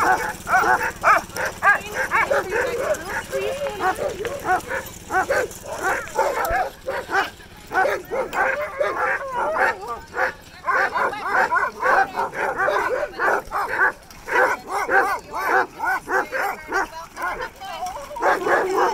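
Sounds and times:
dogs barking and yipping: 0.0s - 18.9s.

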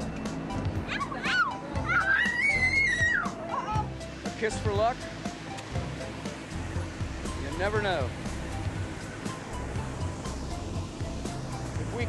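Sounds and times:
young child crying: 0.9s - 3.9s.

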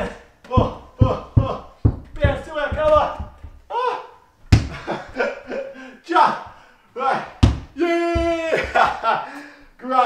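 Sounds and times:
soft thumps: 0.4s - 3.7s
man's drawn-out exclamation: 7.0s - 8.8s.

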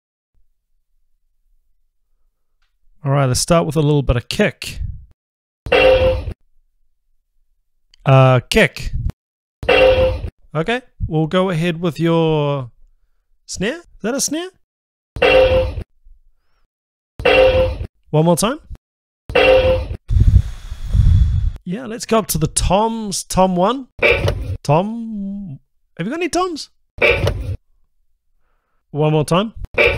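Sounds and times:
toy electronic snare drum hit: 19.3s - 19.9s, 24.0s - 24.6s, 27.0s - 27.6s
low rumbling noise: 20.1s - 21.6s.

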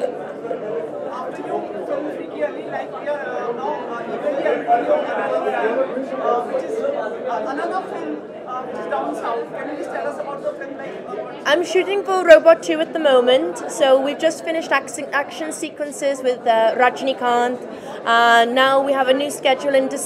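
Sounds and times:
crowd chatter in large hall: 0.0s - 20.0s.

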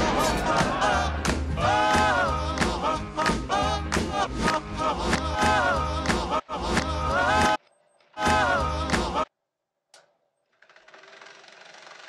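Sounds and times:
film projector clattering: 10.5s - 12.0s.

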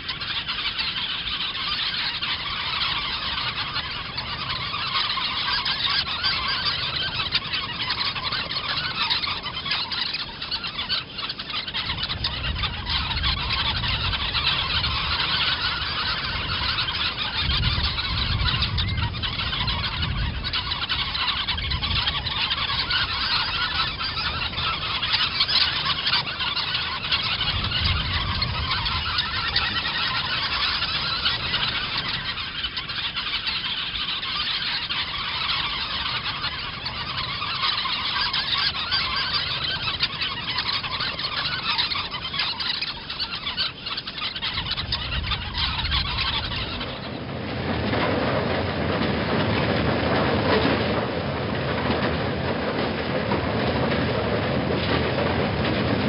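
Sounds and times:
flamingos honking: 0.0s - 56.0s.

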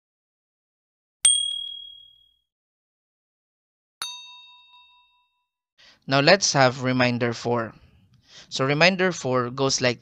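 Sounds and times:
sharp high ding: 1.2s - 2.4s, 4.0s - 5.5s
lower bell-like chime: 4.0s - 5.4s.

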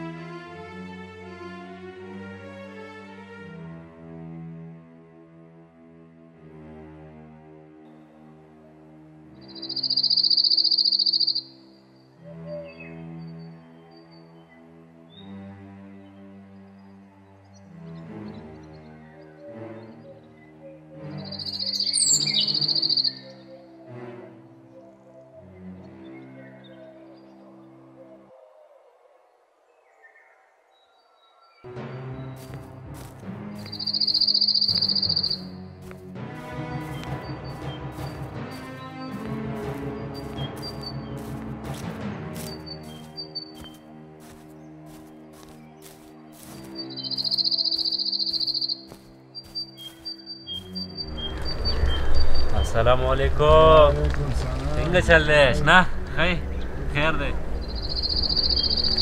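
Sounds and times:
sombre music of low chords: 0.0s - 28.8s, 31.7s - 59.0s
cricket trill: 9.5s - 11.6s, 21.3s - 23.3s, 33.6s - 35.6s, 46.6s - 48.9s, 56.4s - 59.0s.

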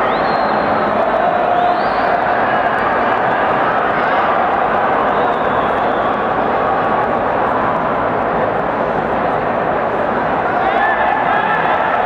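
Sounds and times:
crowd noise in echoing hall: 0.0s - 12.0s.

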